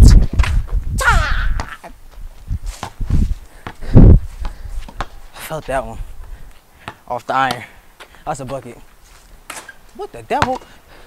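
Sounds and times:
person crying out: 1.0s - 2.0s
basketball thudding on concrete: 2.8s - 3.0s, 3.6s - 3.8s, 10.3s - 10.7s.

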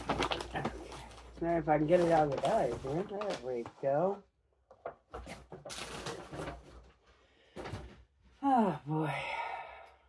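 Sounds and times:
paper bag rustling and crinkling: 0.0s - 4.2s, 5.1s - 7.0s.

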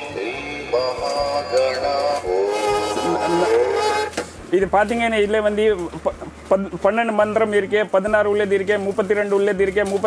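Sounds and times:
electronic devotional chant: 0.0s - 4.2s.

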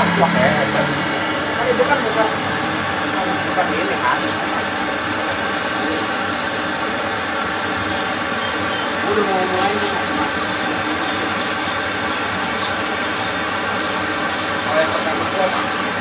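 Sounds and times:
gas burner rushing: 0.0s - 16.0s.

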